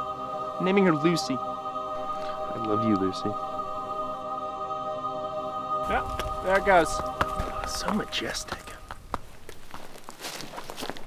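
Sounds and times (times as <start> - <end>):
faint crunches: 8.5 - 11.0
footsteps rustling through leaves: 9.2 - 11.0.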